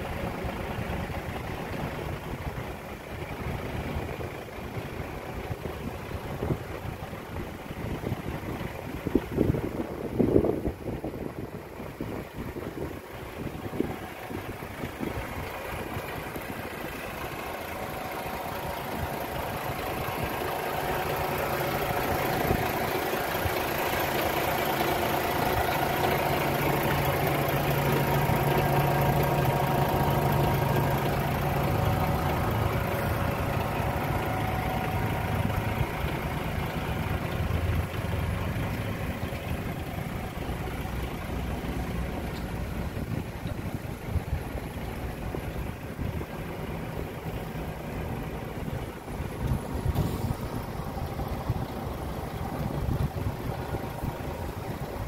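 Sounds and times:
diesel truck idling: 0.0 - 55.0.

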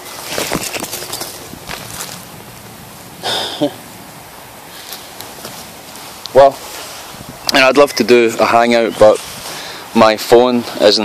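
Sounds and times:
phone handling rustles: 0.1 - 2.3.

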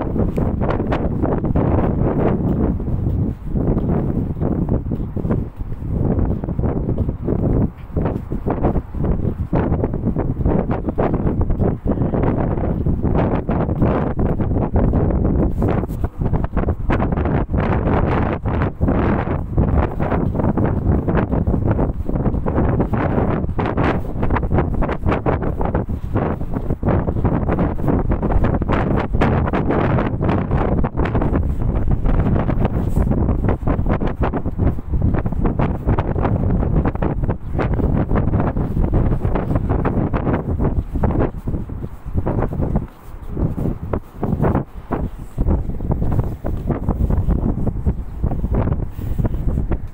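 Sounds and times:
wind blowing across microphone: 0.0 - 49.9.

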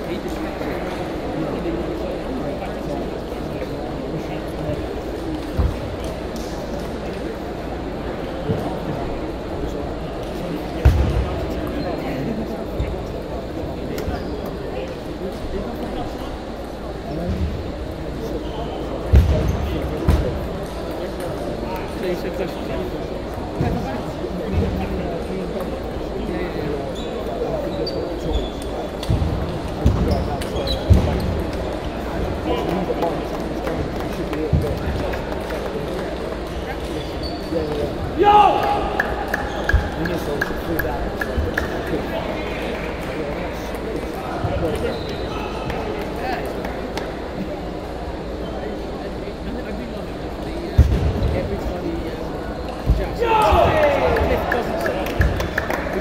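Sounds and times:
table tennis rally: 0.0 - 48.4, 49.8 - 56.0
hubbub of voices: 0.0 - 56.0
steady chatter: 0.0 - 56.0.

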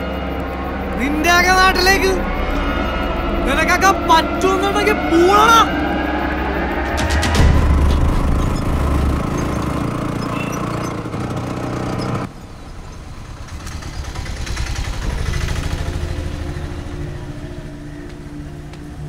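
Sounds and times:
auto-rickshaw engine running: 0.0 - 19.0
quieter engine hum: 0.0 - 19.0.

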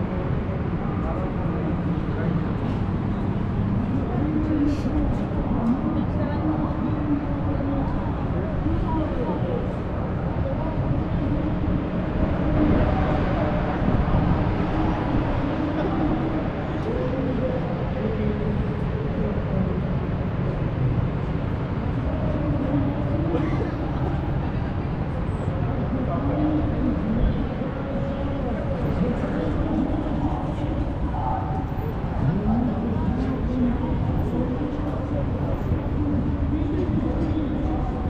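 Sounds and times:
people talking: 0.0 - 20.7, 21.9 - 38.0
low background noise: 0.0 - 38.0.

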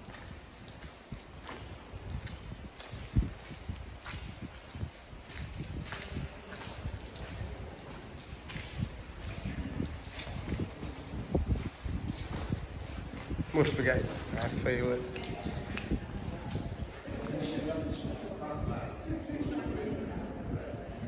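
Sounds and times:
footsteps on gravel: 0.0 - 18.4.

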